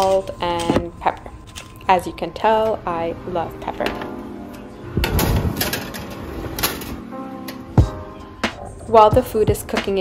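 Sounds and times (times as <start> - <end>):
metal tray scraping on oven rack: 5.0 - 7.1.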